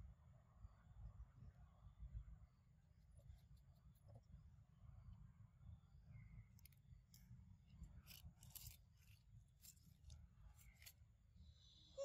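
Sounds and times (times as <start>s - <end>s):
faint low outdoor rumble: 0.0s - 12.0s.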